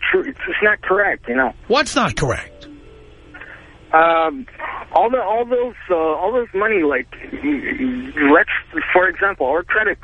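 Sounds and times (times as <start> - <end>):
person speaking: 1.7 - 2.7.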